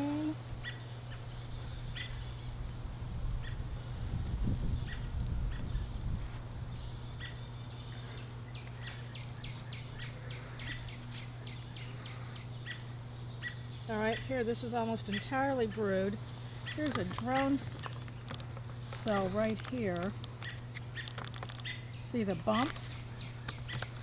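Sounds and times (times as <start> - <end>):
steady low hum: 0.0 - 24.0
bird trill: 6.6 - 14.4.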